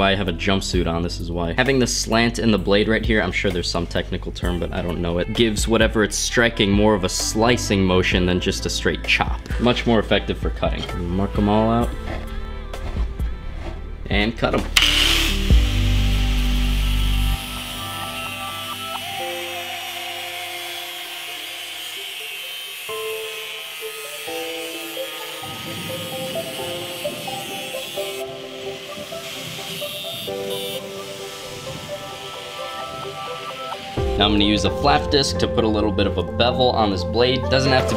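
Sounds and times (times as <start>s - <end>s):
background music: 0.0s - 37.9s
angle grinder cutting steel: 14.8s - 34.3s.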